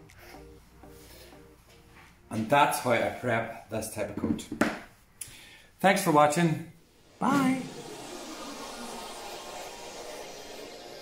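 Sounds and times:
steady hiss: 0:06.8 - 0:11.0.

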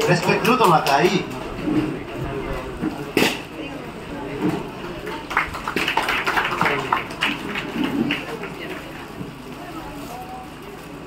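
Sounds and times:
scattered hand clapping: 0:00.0 - 0:01.4, 0:05.0 - 0:08.8.

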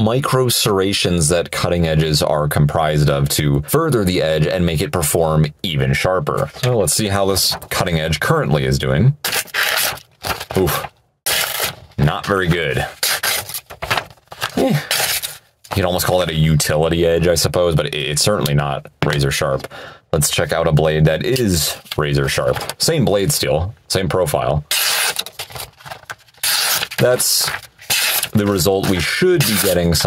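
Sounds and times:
knife rasping through paper: 0:09.2 - 0:10.0, 0:12.9 - 0:13.7, 0:14.4 - 0:15.4, 0:24.7 - 0:25.6, 0:26.4 - 0:30.0.

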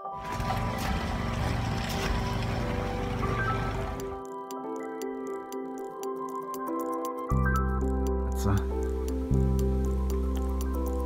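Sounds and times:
soft piano music: 0:00.0 - 0:11.0.

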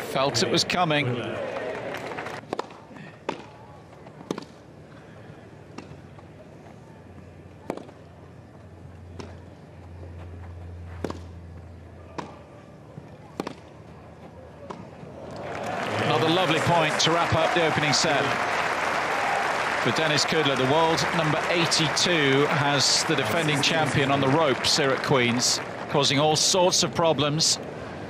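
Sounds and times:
tennis rackets striking ball: 0:04.2 - 0:04.6, 0:11.0 - 0:11.4, 0:13.3 - 0:13.7
hushed crowd: 0:15.0 - 0:28.0.

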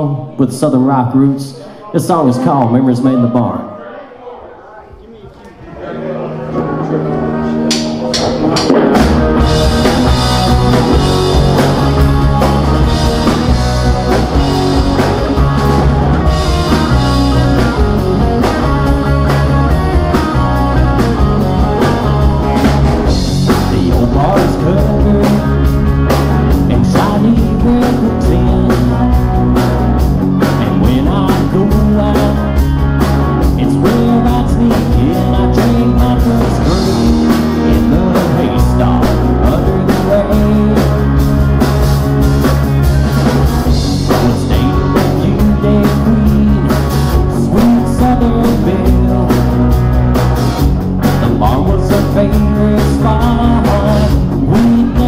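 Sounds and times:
bass guitar: 0:05.8 - 0:55.0
electric guitars: 0:05.9 - 0:55.0
drum kit: 0:07.5 - 0:55.0
lead vocal singing: 0:23.3 - 0:25.7, 0:26.5 - 0:29.3, 0:30.5 - 0:32.6, 0:33.5 - 0:41.1, 0:43.8 - 0:49.7, 0:51.2 - 0:55.0.

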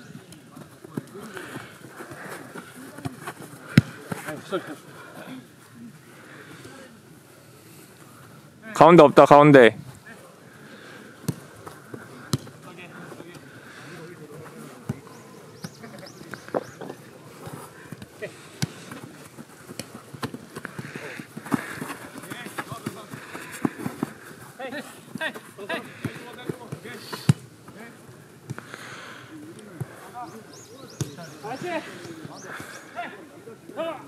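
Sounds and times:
football being kicked: 0:12.3 - 0:12.5.

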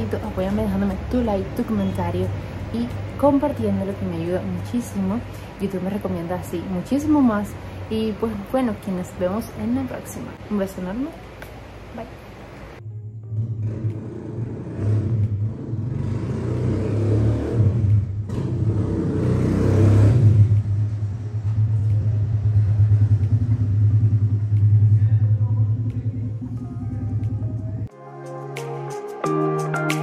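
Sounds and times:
low engine rumble: 0:12.5 - 0:16.3, 0:20.2 - 0:27.9.

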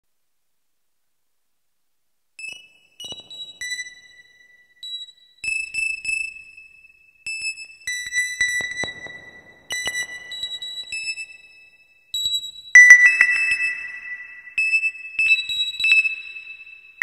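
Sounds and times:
synthesizer bell-like notes: 0:12.8 - 0:14.5.

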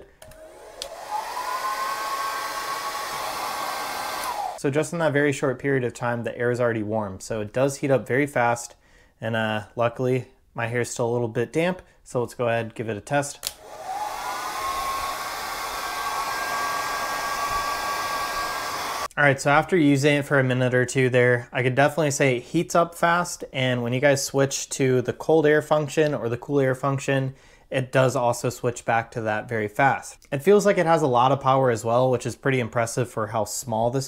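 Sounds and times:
hair dryer running: 0:00.2 - 0:04.6, 0:13.4 - 0:19.1.

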